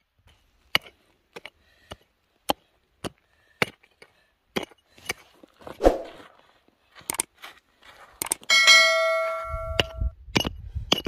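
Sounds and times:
hand pick chopping stony soil: 0.2 - 6.3, 7.0 - 7.4, 8.1 - 8.5, 9.7 - 11.0
bell ding sound effect: 8.5 - 10.0.

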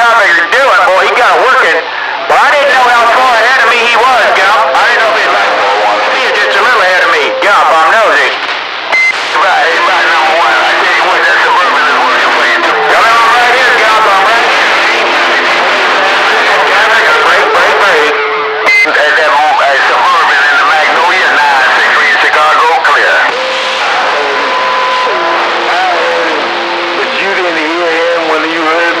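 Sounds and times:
garbled radio voices with static: 0.0 - 29.0
steady whistling tones: 3.0 - 15.4.

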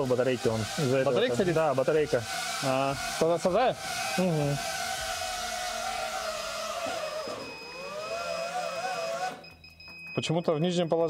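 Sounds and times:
drone propellers whirring: 0.0 - 9.5.

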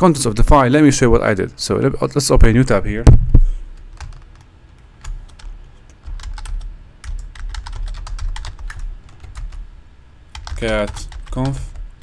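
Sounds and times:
computer keyboard typing: 3.8 - 9.7, 10.3 - 12.0.

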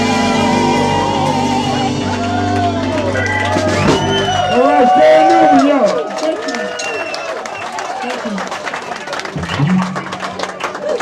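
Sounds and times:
live band playing soul ballad: 0.0 - 5.0
audience calling out and whooping: 0.0 - 11.0.

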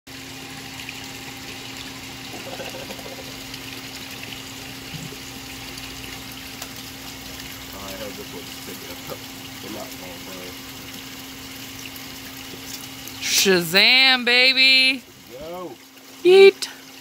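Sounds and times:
low pump hum: 0.1 - 17.0
running water: 0.1 - 17.0.

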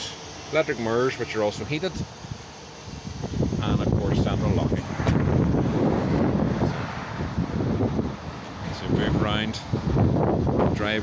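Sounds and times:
wind buffeting microphone: 3.0 - 11.0.

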